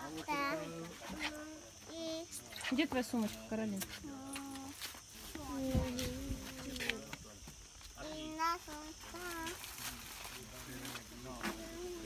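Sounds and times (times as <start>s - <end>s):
child making wordless sounds: 0.0s - 2.4s, 4.0s - 6.8s, 8.0s - 9.6s.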